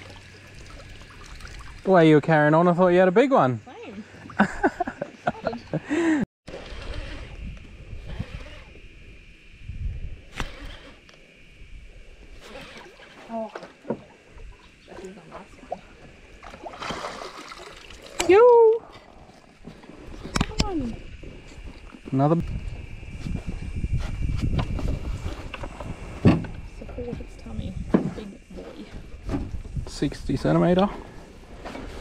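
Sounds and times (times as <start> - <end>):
water splashing: 0.0 - 2.0, 14.9 - 18.4
steady high hum: 0.0 - 32.0.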